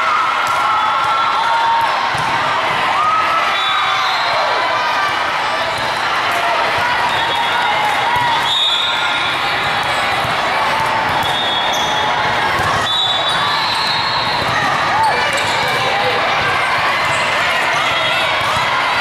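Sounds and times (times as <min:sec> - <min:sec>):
volleyballs hit and bouncing: 0:00.3 - 0:03.5, 0:04.2 - 0:19.0.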